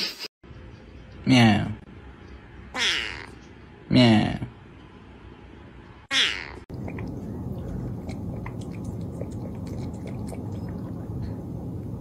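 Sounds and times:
cat meowing: 2.8 - 3.4, 6.1 - 6.6
cat lapping water: 6.7 - 12.0
steady low hum: 6.7 - 12.0.

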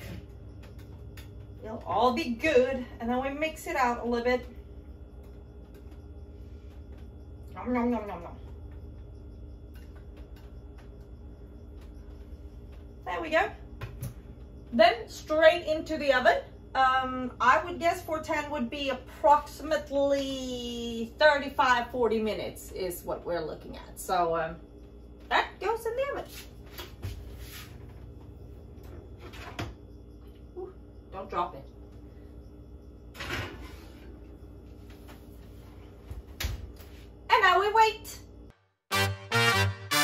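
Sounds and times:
low steady hum: 0.0 - 40.0.

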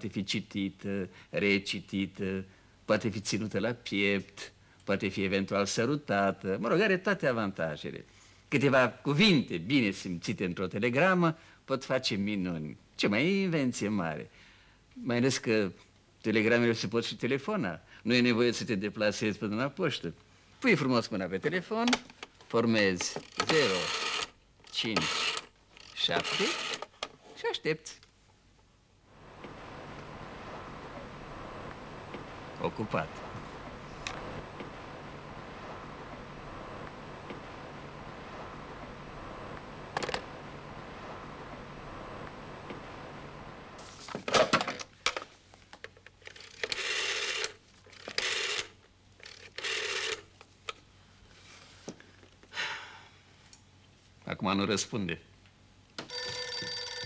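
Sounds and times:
rotary dial whirring back: 23.2 - 26.9, 29.2 - 43.6, 46.4 - 50.2
rotary telephone dial whirring: 23.2 - 26.9, 46.2 - 50.3.

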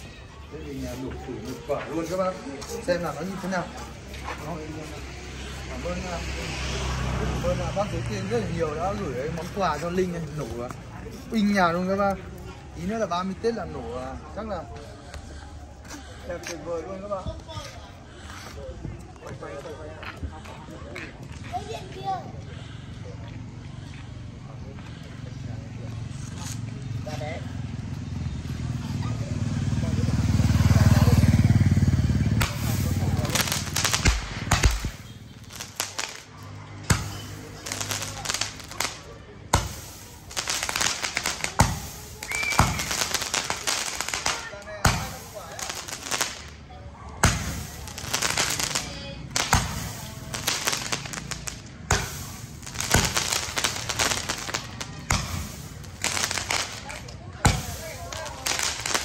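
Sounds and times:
firework cracking shots: 32.2 - 46.6, 47.2 - 59.0.

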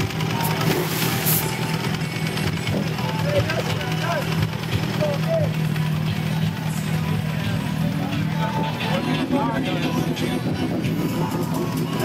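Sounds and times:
crowd conversation: 0.0 - 12.0
motorcycle engines running: 0.0 - 12.0.

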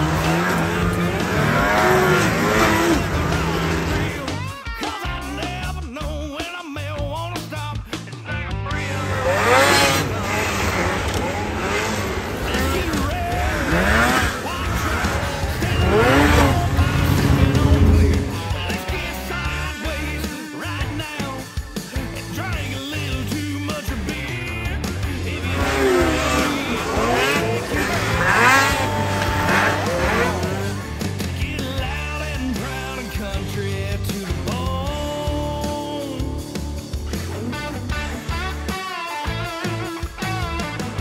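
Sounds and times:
snowmobile engines revving: 0.0 - 4.6, 8.6 - 41.0
music: 0.0 - 41.0.

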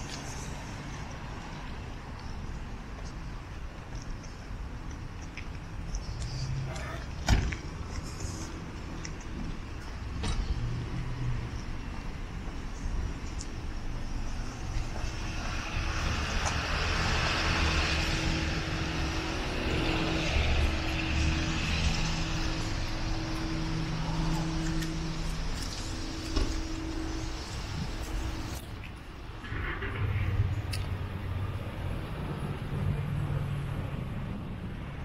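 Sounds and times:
car engine and tyres: 0.0 - 35.0.

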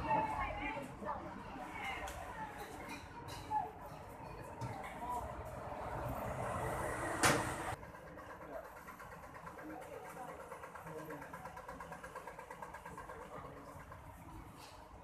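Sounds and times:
car traffic: 3.1 - 7.8.

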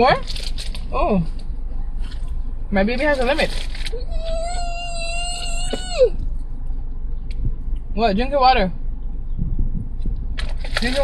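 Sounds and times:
child whining: 4.0 - 6.2.

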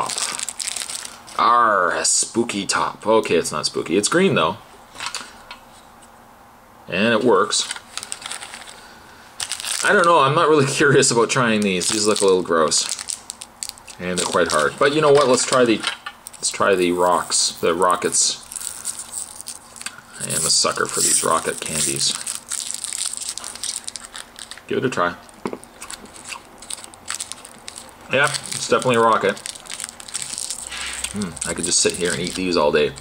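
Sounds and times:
candy wrapper crinkling: 0.0 - 1.4, 7.5 - 33.0
person speaking: 14.0 - 15.8, 16.4 - 18.6, 20.1 - 22.3, 28.0 - 29.5, 30.8 - 33.0.

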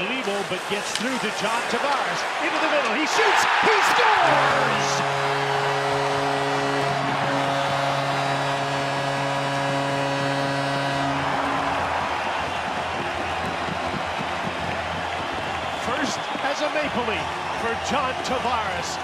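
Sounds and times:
crowd cheering: 0.0 - 19.0
arena goal horn: 2.9 - 18.1.

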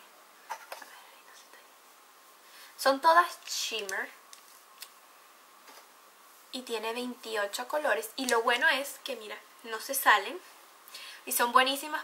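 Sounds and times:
soft whispered voice: 0.7 - 1.9.

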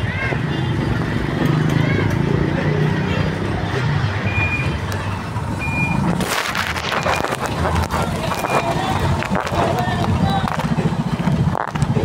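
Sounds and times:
street crowd talking: 0.0 - 12.0.

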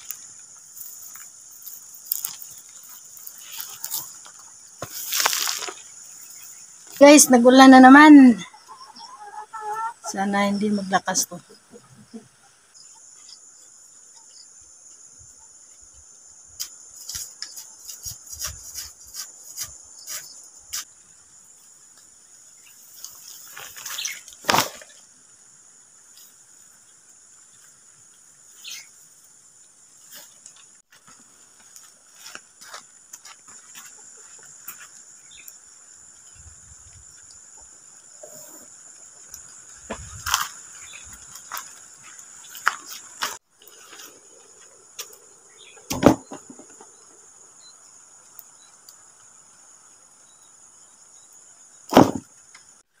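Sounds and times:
dry grass rustling: 0.0 - 6.9
insects chirring: 0.0 - 53.0.

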